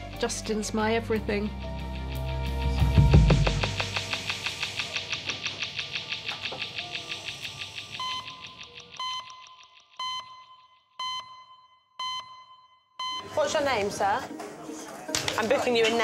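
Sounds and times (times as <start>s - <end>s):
fast-pulsing music: 0.2s - 9.0s
short electronic beeps: 7.7s - 13.4s.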